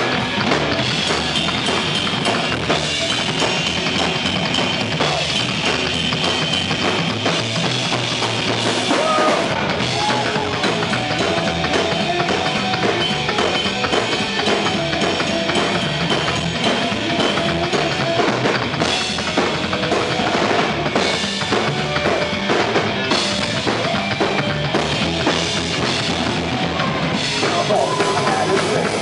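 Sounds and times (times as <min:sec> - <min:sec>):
driving drum kit: 0:00.0 - 0:29.0
electric guitar: 0:00.0 - 0:29.0
upright bass plucked: 0:00.0 - 0:29.0.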